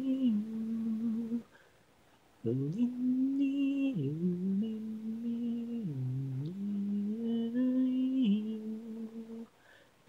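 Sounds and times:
person humming a slow melody: 0.0 - 1.5, 2.4 - 9.5.

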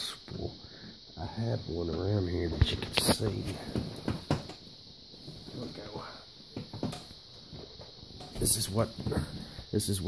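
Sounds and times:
faint high-pitched hiss: 0.0 - 10.0
parts knocking and rustling: 3.0 - 4.7, 6.5 - 9.5.

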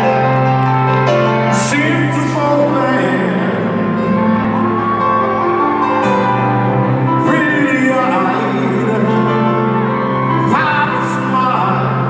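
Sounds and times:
live concert grand piano: 0.0 - 12.0.

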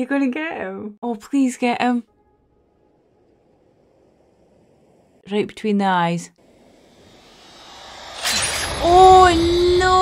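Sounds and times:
woman's voice: 0.0 - 2.1, 5.3 - 6.4, 8.8 - 10.0
low rumble: 2.1 - 5.3, 6.4 - 10.0
sharp crack: 6.4 - 10.0.

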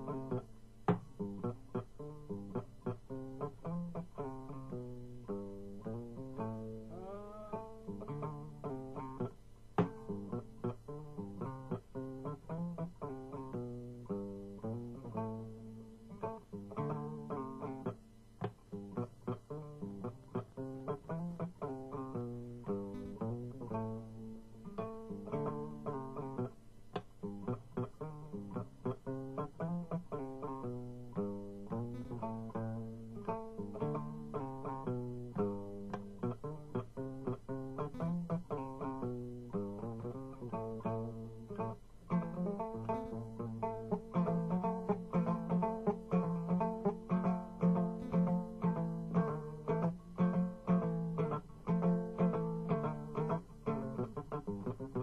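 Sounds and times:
plucked string instrument music: 0.0 - 55.0.

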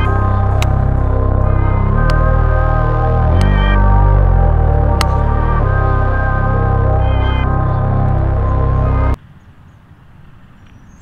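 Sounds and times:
low outdoor rumble: 0.0 - 9.2.

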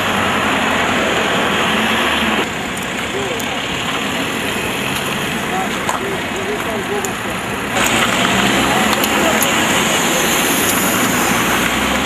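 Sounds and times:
faint voices: 0.0 - 12.0
vehicles passing: 0.0 - 12.0.

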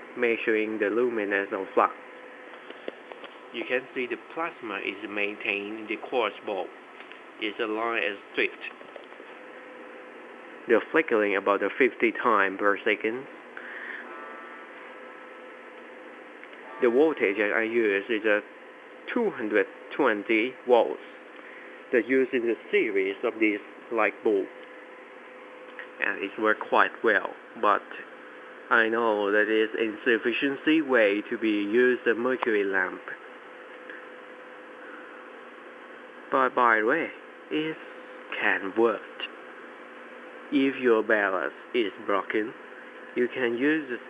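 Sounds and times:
faint electrical hum: 0.0 - 44.0
steady hiss: 0.0 - 44.0.

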